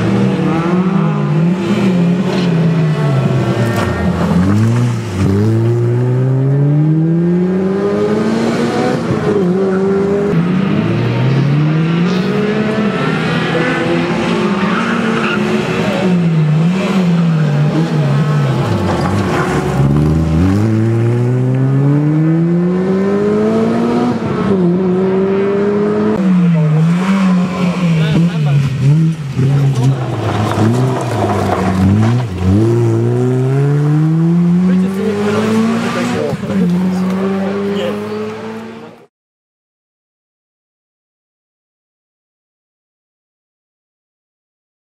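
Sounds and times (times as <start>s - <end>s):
car engine revving through gears: 0.0s - 39.1s.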